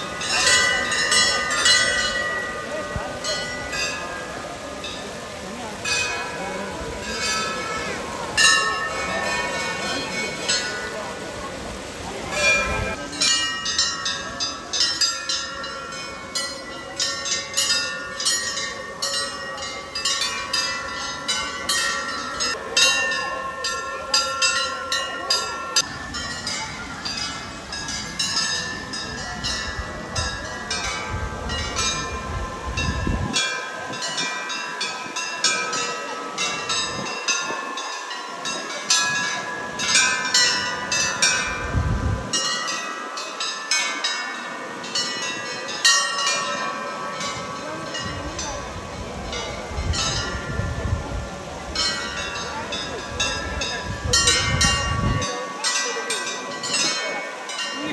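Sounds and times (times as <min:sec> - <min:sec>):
metal bells ringing: 0:00.0 - 0:57.9.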